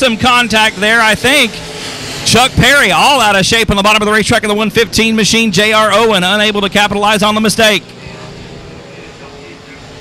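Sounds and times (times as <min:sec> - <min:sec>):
distant race car engines droning: 0:00.0 - 0:10.0.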